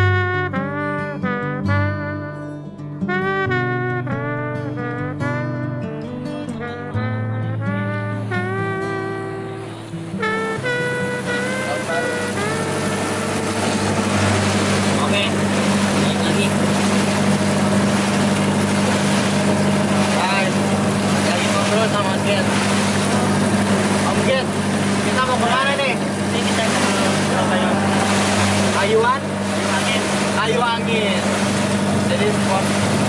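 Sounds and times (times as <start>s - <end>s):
motorboat engine droning: 0.0s - 2.2s, 3.2s - 5.7s, 6.6s - 33.0s
background music: 0.0s - 15.3s
water rushing along hull: 7.8s - 33.0s
voices: 11.2s - 17.9s, 19.3s - 33.0s.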